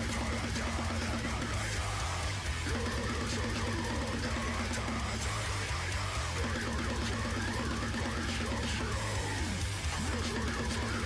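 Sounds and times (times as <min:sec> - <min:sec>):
death metal music: 0:00.0 - 0:11.0.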